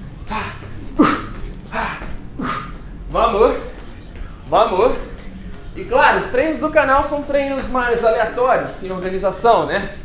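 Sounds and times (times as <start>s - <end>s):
man grunting exhalations: 0.2s - 2.8s.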